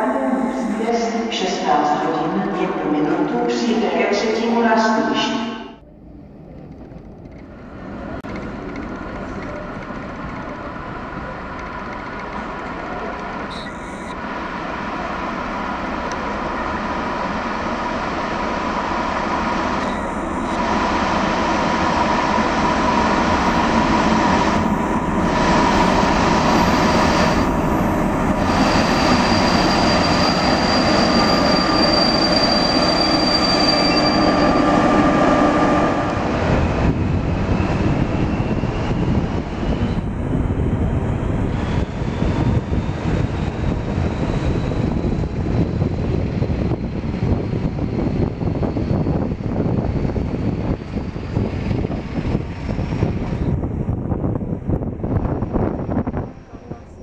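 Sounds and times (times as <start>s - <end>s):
diesel locomotive: 0.0s - 57.0s
train rumbling: 0.0s - 57.0s
train wheel squeal: 13.4s - 14.2s, 25.6s - 36.0s, 37.5s - 40.1s.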